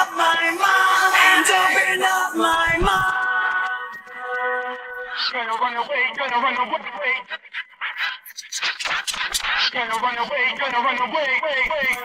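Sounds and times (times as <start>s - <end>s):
clipped vocal fragments: 0.0s - 12.0s
breath sounds: 7.3s - 9.9s.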